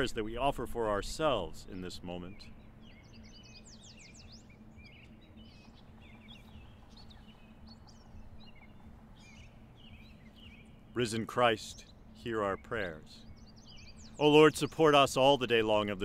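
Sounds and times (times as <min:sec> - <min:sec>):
low steady hum: 0:00.0 - 0:16.0
songbirds chirping: 0:00.0 - 0:16.0.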